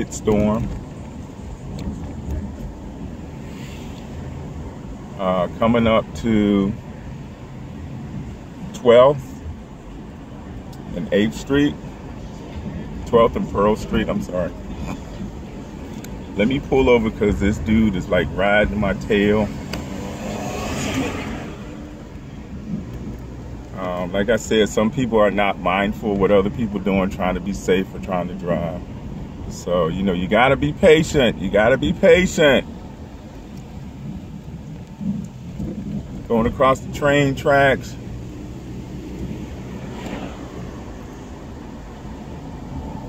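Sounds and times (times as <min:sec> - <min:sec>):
car road and engine rumble: 0:00.0 - 0:43.0.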